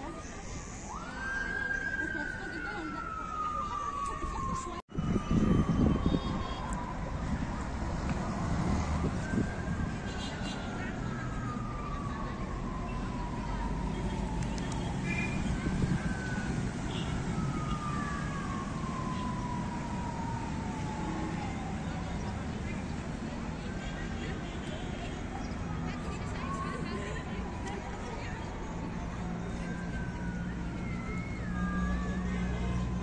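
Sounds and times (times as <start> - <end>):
city traffic rumble: 0.0 - 33.0
emergency vehicle siren wailing: 0.0 - 33.0.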